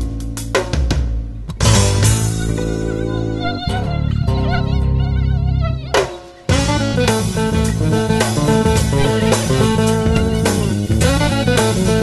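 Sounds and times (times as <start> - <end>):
background music: 0.0 - 12.0
mosquito whine: 2.2 - 12.0.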